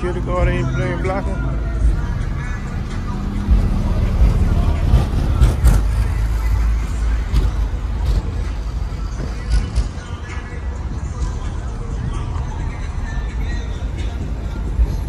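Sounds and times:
bass-heavy music: 0:00.0 - 0:15.0
car rumbling: 0:00.0 - 0:15.0
voices: 0:00.0 - 0:15.0.

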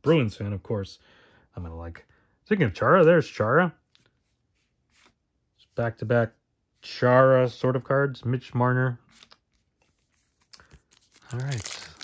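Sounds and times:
foil wrapper crinkling: 0:10.4 - 0:12.0.

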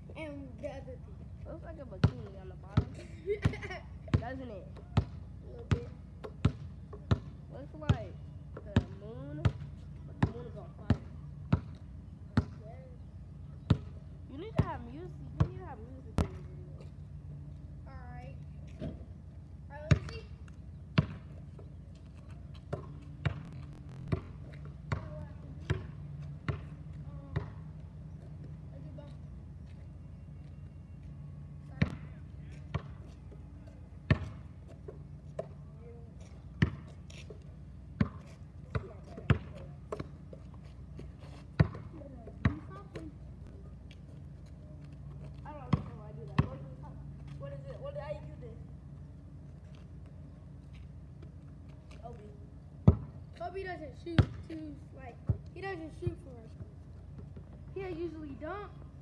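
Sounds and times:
steady low hum: 0:00.0 - 0:59.0
basketball bouncing on asphalt: 0:01.7 - 0:29.8, 0:30.4 - 0:48.1, 0:49.7 - 0:59.0.

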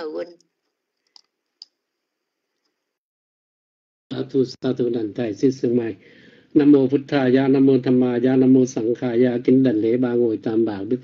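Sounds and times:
faint clicks: 0:00.4 - 0:01.8.

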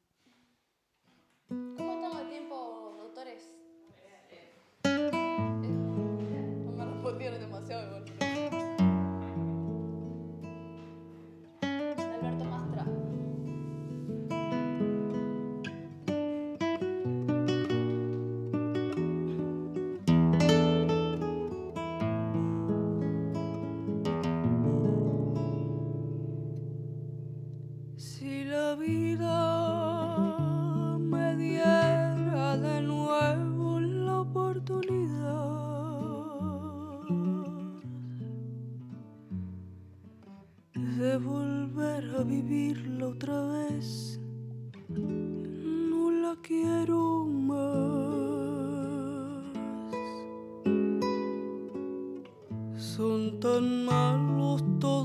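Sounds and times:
classical guitar playing: 0:01.4 - 0:03.9, 0:04.8 - 0:55.0.

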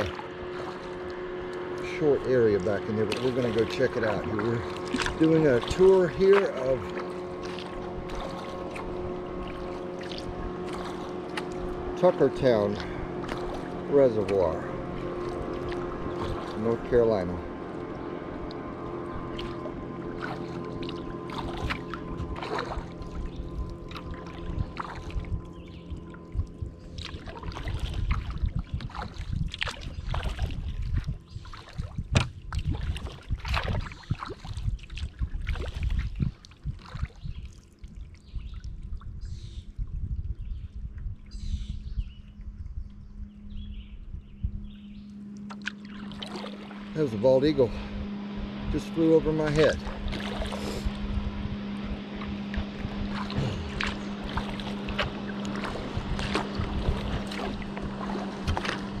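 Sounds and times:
paddle splashing water: 0:00.0 - 0:39.6, 0:45.4 - 0:59.0.

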